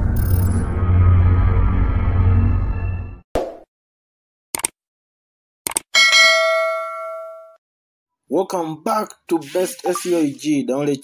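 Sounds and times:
notification bell ding: 6.0 - 7.6.

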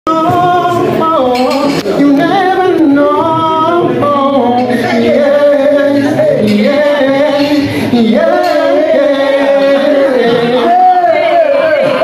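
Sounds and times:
man singing unaccompanied: 0.1 - 12.0.

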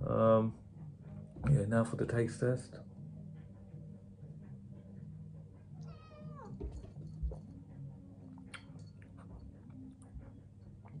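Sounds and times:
cat meowing: 5.8 - 6.6.

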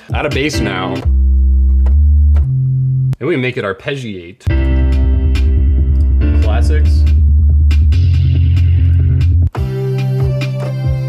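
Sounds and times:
drum machine hits: 0.0 - 2.7, 4.5 - 11.0
arpeggiated synth bass line: 0.2 - 3.2, 4.5 - 9.5.

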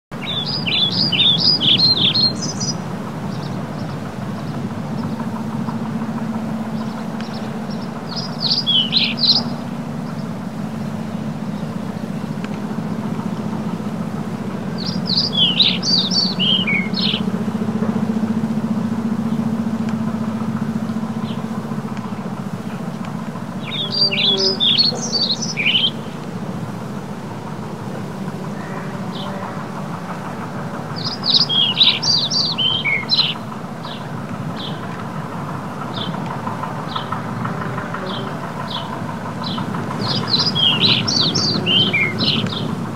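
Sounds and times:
songbird singing high notes: 0.2 - 5.2, 6.7 - 10.4, 14.8 - 17.4, 23.6 - 26.2, 31.0 - 34.0, 38.0 - 42.8
steady low hum: 0.2 - 42.9.

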